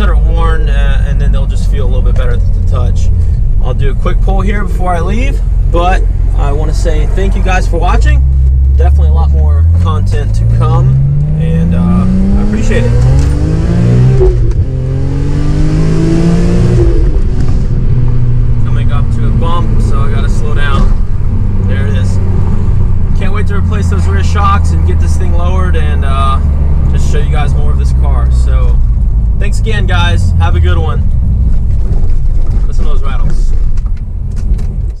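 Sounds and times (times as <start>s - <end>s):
car engine accelerating with gear shifts: 0.0s - 35.0s.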